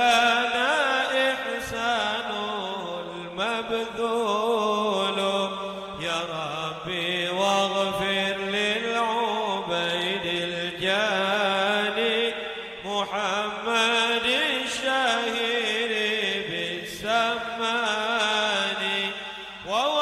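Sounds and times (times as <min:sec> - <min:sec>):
man chanting into a microphone: 0:00.0 - 0:20.0.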